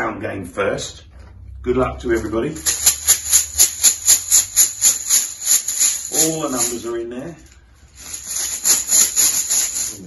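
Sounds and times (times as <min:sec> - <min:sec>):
tokens rattling in cloth bag: 0:02.6 - 0:06.9, 0:07.9 - 0:10.0.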